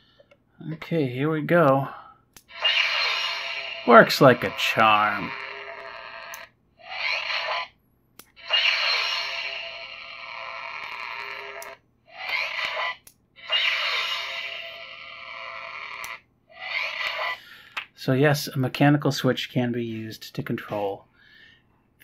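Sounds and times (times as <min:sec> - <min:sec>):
lightsaber ignition and hum: 0:02.4 - 0:17.4.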